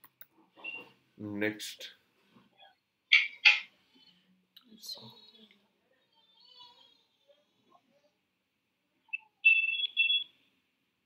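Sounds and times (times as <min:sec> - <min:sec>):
high-pitched electronic beeps: 0:09.1 - 0:10.3.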